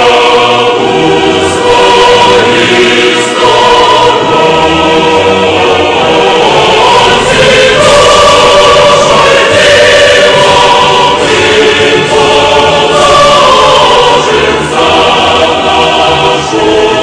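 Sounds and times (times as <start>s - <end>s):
choir singing held notes: 0.0s - 17.0s.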